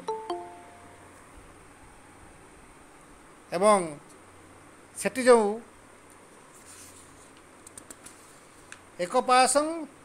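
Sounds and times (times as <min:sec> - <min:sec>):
man speaking: 0:03.5 - 0:04.0, 0:05.0 - 0:05.7, 0:09.0 - 0:10.0.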